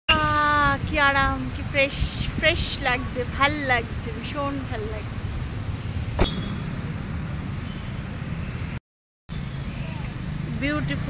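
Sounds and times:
wind buffeting microphone: 0.1s - 7.5s.

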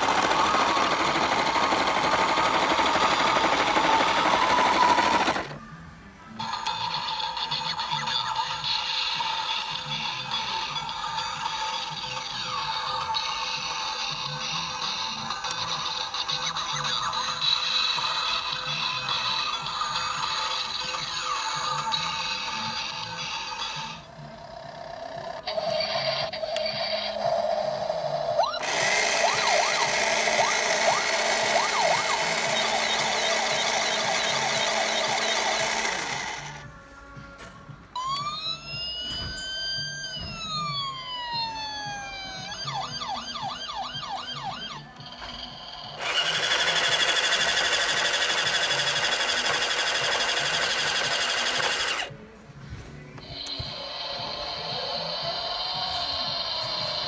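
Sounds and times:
wailing toy siren: 0.0s - 5.6s, 6.4s - 36.6s, 38.0s - 52.1s, 53.2s - 57.0s
loud noisy electronic sound: 6.4s - 36.6s
fast yelping siren: 28.2s - 36.5s, 38.0s - 44.9s.

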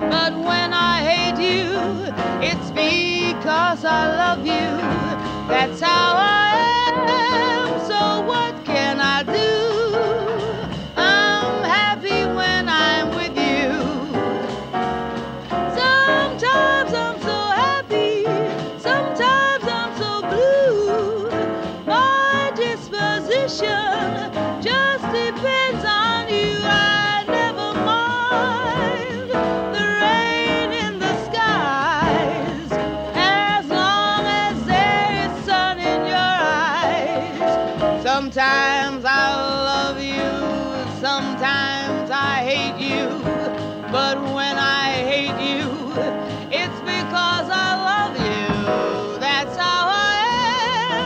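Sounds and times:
piano trio playing: 0.0s - 51.0s
woman singing jazz: 0.0s - 51.0s.

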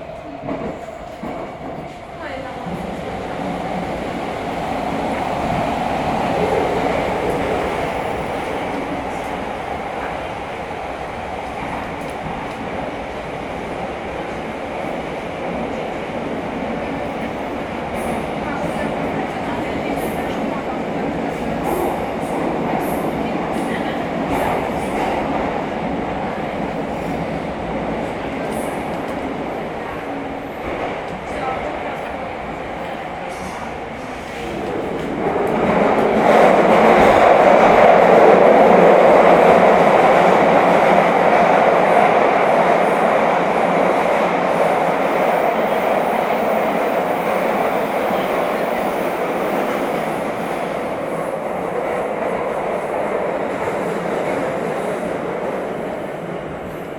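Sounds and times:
train wheels rumbling on rails: 0.0s - 56.9s.

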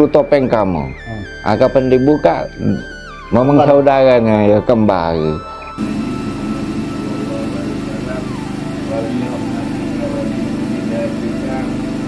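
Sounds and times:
motor droning hum: 5.8s - 12.0s.

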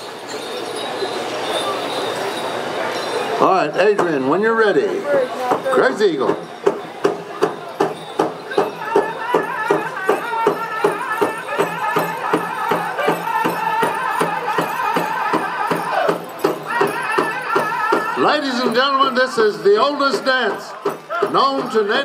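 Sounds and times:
large drum beating: 5.5s - 18.8s
group singing high voices: 8.8s - 18.4s.

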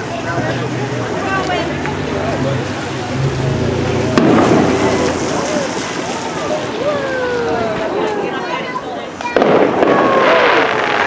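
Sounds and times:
crowd talking: 0.0s - 11.0s
firework bang: 4.1s - 6.6s, 9.2s - 11.0s.

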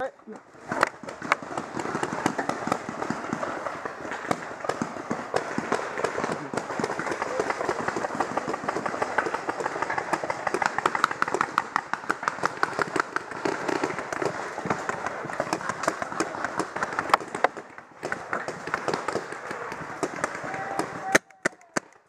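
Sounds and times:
paintball markers firing: 0.3s - 22.0s.

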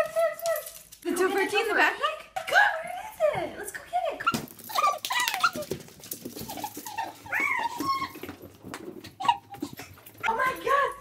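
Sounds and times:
small dog whining and yelping: 4.3s - 5.8s, 6.4s - 8.4s, 9.1s - 10.0s.

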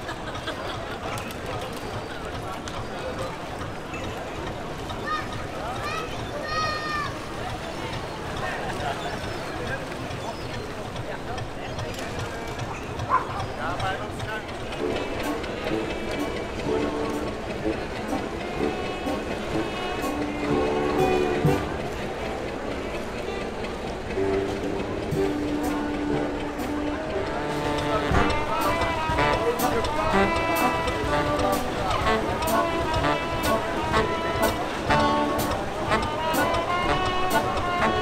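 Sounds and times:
crowd chatter: 0.0s - 38.0s
brass band playing: 14.7s - 22.3s, 24.1s - 38.0s.

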